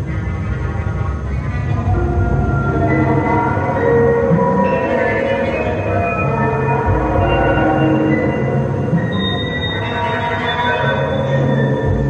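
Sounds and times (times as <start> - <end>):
low rumble: 0.6 - 4.6.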